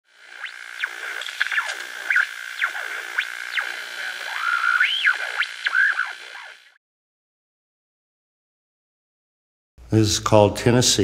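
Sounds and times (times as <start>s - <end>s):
steady high synth tone: 0.1s - 6.8s
synthesizer swooping pitch glides: 0.2s - 6.8s.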